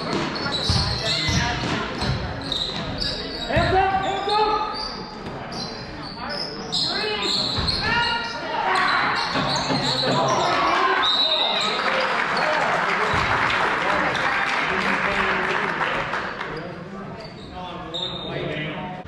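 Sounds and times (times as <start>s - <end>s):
crowd noise: 0.0s - 19.0s
people shouting in large hall: 6.8s - 13.1s.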